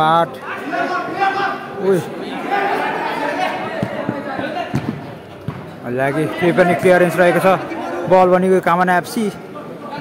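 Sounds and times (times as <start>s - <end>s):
background voices in a hall: 0.0s - 10.0s
ball kicked with dull thuds: 3.8s - 5.7s.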